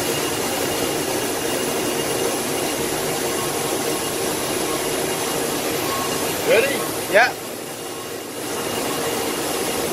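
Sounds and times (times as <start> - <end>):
machining centre whirring hiss: 0.0 - 9.9.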